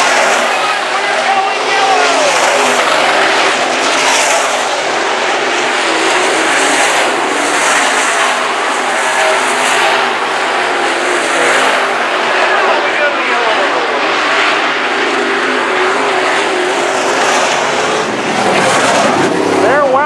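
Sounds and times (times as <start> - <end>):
race car engines revving past: 0.0 - 20.0.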